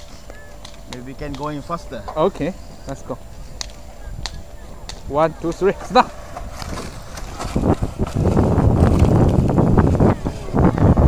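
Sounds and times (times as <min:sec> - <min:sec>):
wind rumbling on microphone: 0:00.0 - 0:11.0
sled runners scraping ice: 0:05.4 - 0:10.6.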